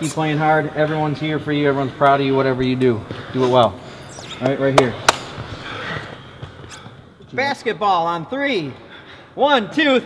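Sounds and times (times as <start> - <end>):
gym room noise: 0.0 - 10.0
hands slapping together: 4.8 - 5.4.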